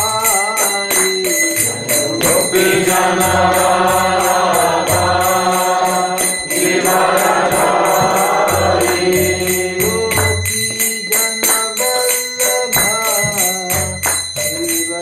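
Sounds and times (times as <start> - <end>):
devotional chanting: 0.0 - 15.0
hand cymbals striking: 0.0 - 15.0.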